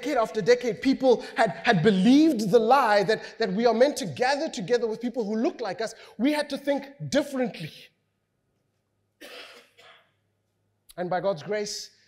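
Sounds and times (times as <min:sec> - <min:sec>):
man coughing: 0:09.2 - 0:10.1.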